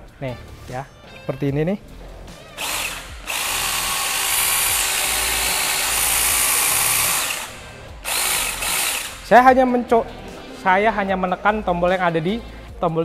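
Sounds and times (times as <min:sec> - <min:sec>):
cordless saw motor running: 0:02.6 - 0:09.3.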